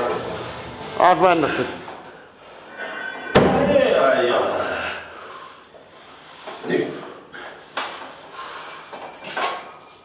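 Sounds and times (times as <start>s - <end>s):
person breathing noisily: 5.0s - 8.9s.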